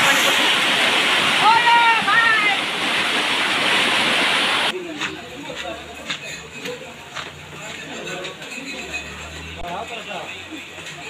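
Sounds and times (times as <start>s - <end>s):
floodwater rushing down street: 0.0s - 11.0s.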